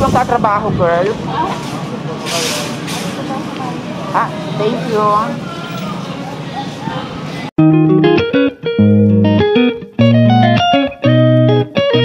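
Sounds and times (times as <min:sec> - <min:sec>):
faint voices: 0:00.0 - 0:07.5
short burst of hiss: 0:01.6 - 0:03.2.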